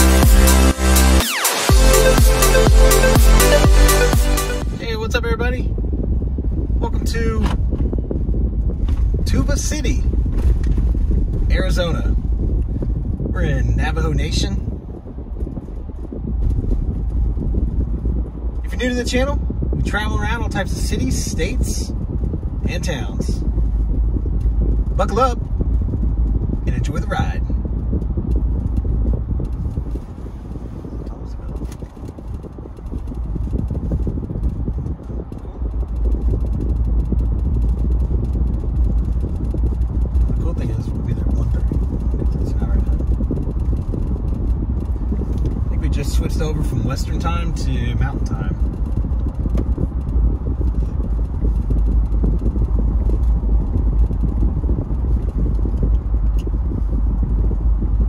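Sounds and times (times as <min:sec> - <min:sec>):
car cabin road and wind noise: 0:00.0 - 0:58.0.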